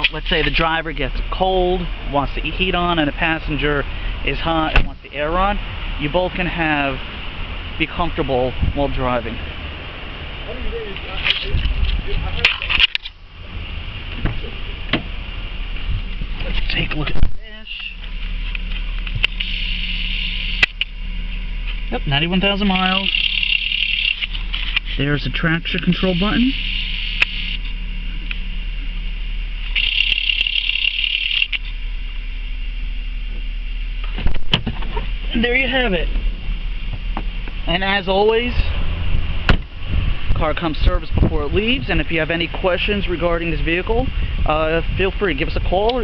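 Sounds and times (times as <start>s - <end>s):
car cabin engine hum: 0.0s - 46.0s
low rumble: 0.1s - 30.7s, 31.5s - 46.0s
high hissing: 19.3s - 20.8s, 25.8s - 28.2s.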